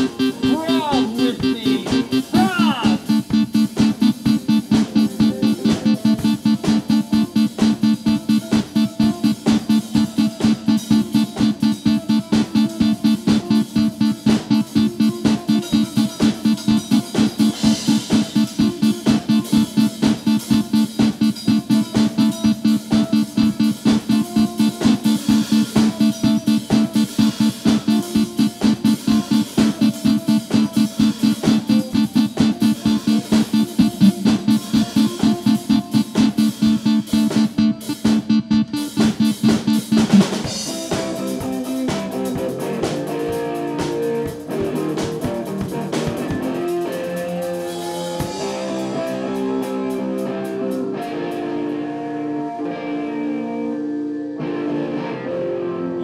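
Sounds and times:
drum kit pounding beat: 0:00.0 - 0:51.1
electric guitar notes ringing: 0:00.0 - 0:56.0.

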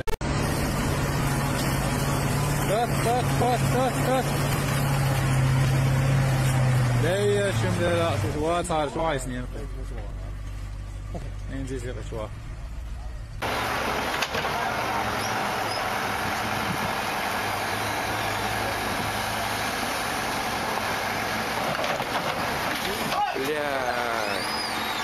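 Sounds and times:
excavator machinery rushing: 0:00.0 - 0:09.5, 0:12.2 - 0:25.0
truck engine hum: 0:00.0 - 0:25.0.

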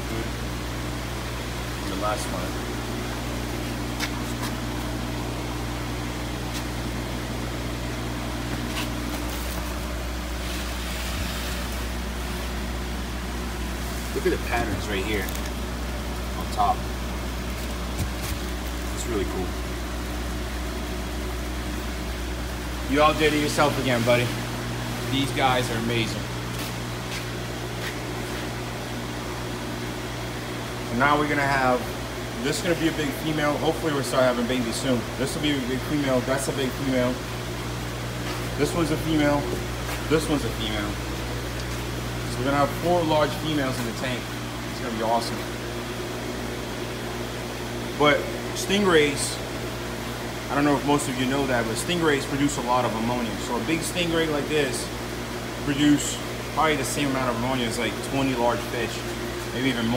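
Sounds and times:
machinery hum and hiss: 0:00.0 - 0:59.9.

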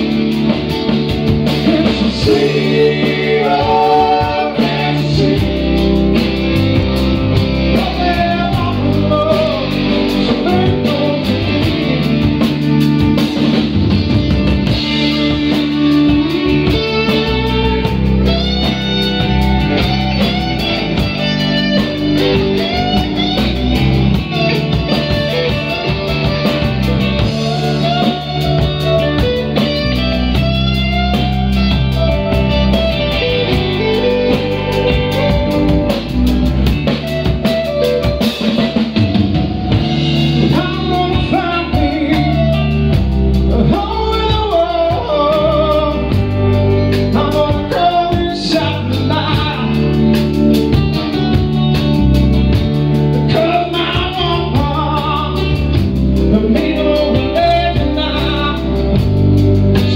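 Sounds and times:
electric guitar lead line: 0:00.0 - 0:59.9
rock band playing: 0:00.0 - 0:59.9.

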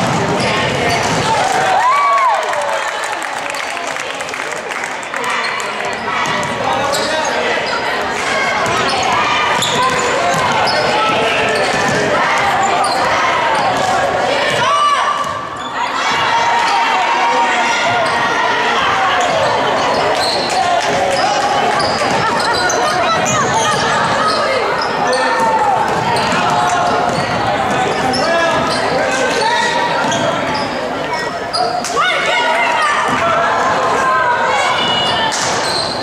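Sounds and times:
sneakers squeaking: 0:00.0 - 0:01.6, 0:05.4 - 0:16.8, 0:17.7 - 0:32.0, 0:34.7 - 0:36.0
voices echoing in gymnasium: 0:00.0 - 0:36.0.

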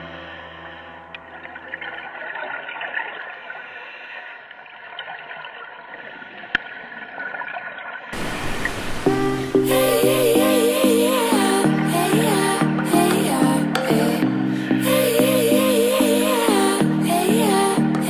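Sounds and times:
music: 0:00.0 - 0:02.0, 0:09.0 - 0:18.0
muffled underwater water wash: 0:01.2 - 0:10.5
loud rushing hiss: 0:08.2 - 0:11.3.

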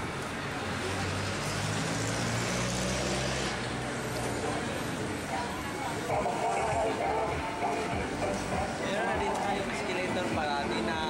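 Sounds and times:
vehicle engine humming: 0:00.0 - 0:11.0
background voices: 0:03.8 - 0:11.0.

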